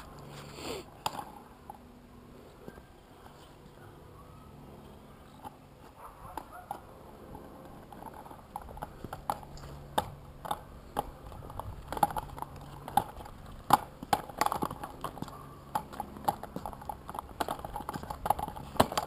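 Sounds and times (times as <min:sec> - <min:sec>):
inline skates clacking on bricks: 0:00.0 - 0:03.8, 0:04.8 - 0:19.0.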